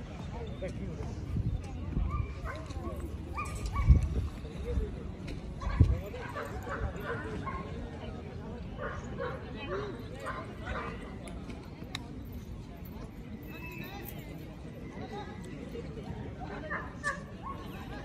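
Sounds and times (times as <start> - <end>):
people talking: 0.0 - 18.0.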